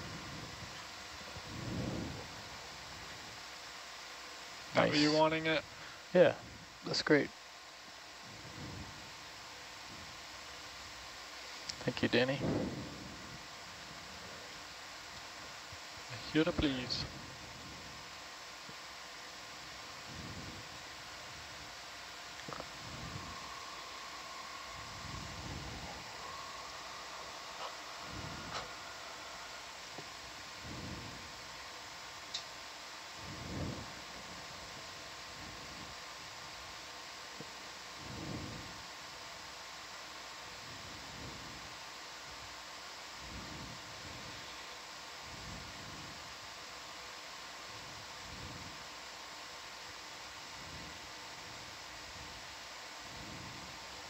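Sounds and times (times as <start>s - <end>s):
faint hum: 0.0s - 54.0s
intercom line hiss: 4.6s - 7.3s, 11.3s - 39.1s
soft low rumbles: 19.6s - 32.6s.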